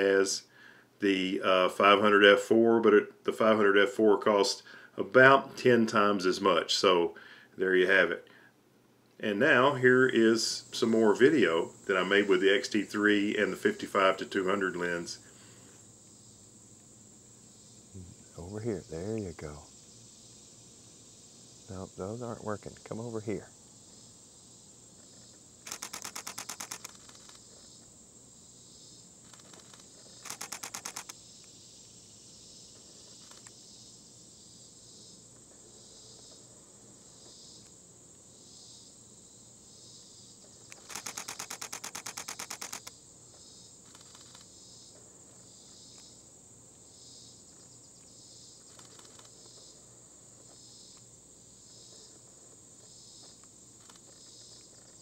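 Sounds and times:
pulsing insect chorus: 0.0 - 2.4, 9.4 - 55.0
camera shutter bursts: 25.6 - 27.4, 29.3 - 31.2, 40.8 - 42.9.

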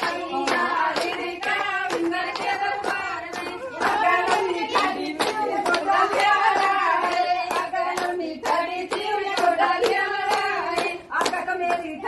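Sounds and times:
hands clapping: 0.0 - 12.0
women singing: 0.0 - 12.0.

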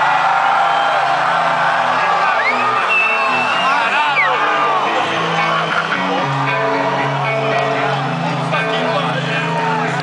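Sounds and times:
live metal band playing: 1.1 - 10.0
crowd singing and shouting: 1.2 - 10.0.

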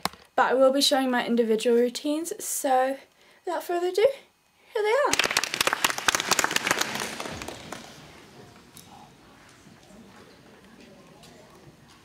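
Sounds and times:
faint murmured voices: 6.9 - 12.0.

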